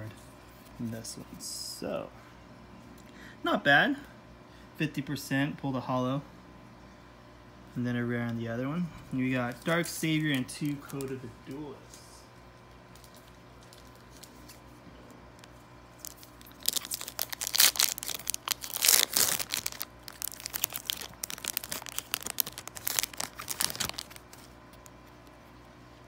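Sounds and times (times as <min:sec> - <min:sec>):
foil pack tearing and crinkling: 0:16.0 - 0:25.0.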